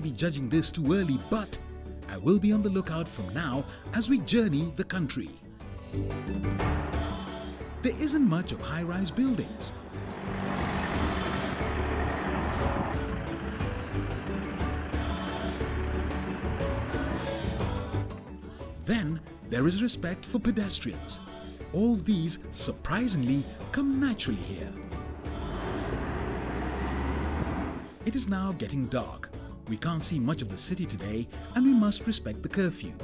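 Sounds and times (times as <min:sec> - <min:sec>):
background music: 0:00.0 - 0:33.0
car road noise: 0:06.6 - 0:18.0, 0:24.7 - 0:28.0.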